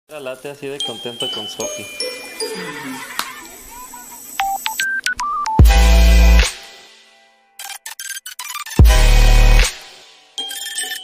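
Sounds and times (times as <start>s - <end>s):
electronic keypad beeps: 4.4s - 5.6s, 10.4s - 11.0s
loud distorted bass music: 5.6s - 6.5s, 8.8s - 9.8s.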